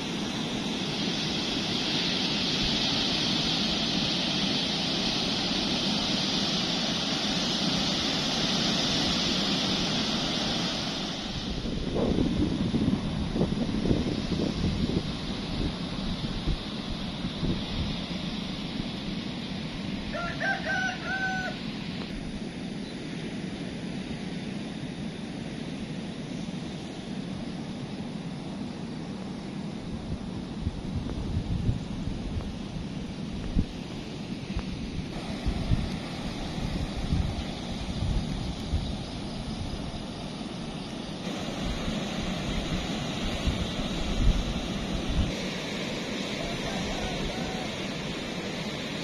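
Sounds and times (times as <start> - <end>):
ocean surf: 0.0 - 49.0
wind gusting on microphone: 0.0 - 49.0.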